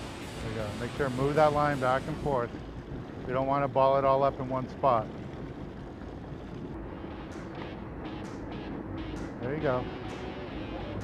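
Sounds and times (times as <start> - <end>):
boat engine running: 0.0 - 11.0
water noise: 0.0 - 11.0
wind: 0.0 - 11.0.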